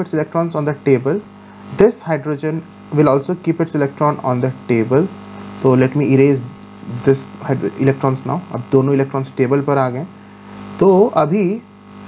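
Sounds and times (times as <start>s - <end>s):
electrical mains hum: 0.0s - 12.0s
man's drawn-out vocal sound: 5.6s - 7.9s.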